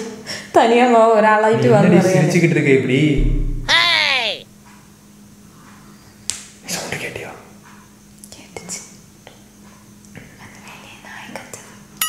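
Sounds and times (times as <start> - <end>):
steady low hum: 3.2 - 3.7.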